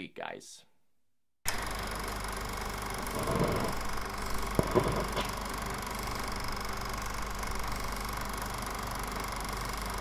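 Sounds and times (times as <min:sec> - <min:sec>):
film projector clattering: 0:01.5 - 0:10.0.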